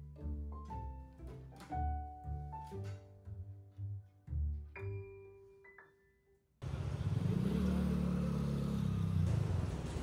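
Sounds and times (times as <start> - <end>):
city street traffic: 6.6 - 10.0
vehicle engine passing by: 6.6 - 10.0.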